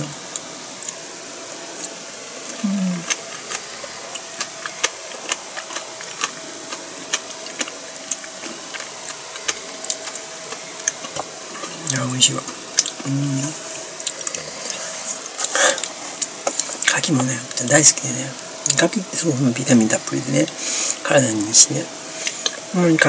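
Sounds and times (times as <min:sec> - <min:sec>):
person chewing food: 0:00.3 - 0:01.1, 0:01.7 - 0:16.9, 0:22.2 - 0:22.7.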